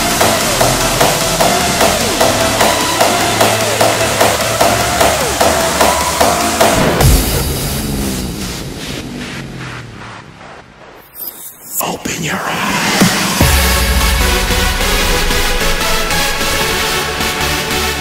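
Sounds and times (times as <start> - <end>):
hardstyle dance music: 0.0 - 18.0.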